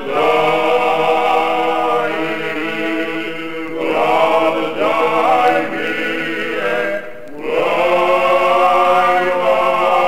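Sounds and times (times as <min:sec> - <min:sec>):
men's choir singing in harmony: 0:00.0 - 0:10.0.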